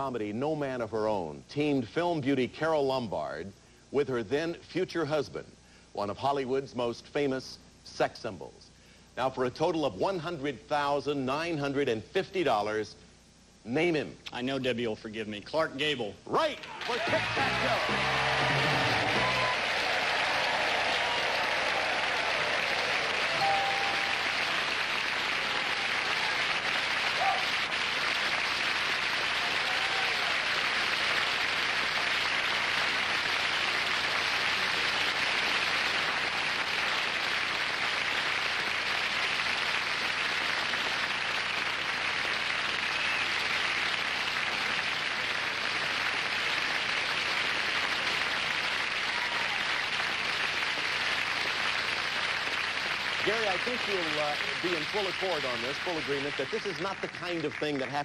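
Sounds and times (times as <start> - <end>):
audience applauding: 16.6 - 58.0.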